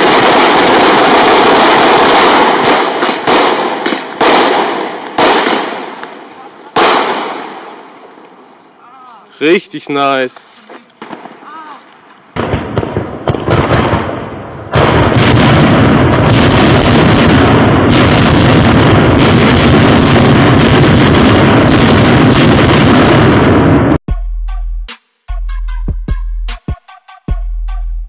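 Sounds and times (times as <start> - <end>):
firecracker barrage crackling: 0.0 - 24.0.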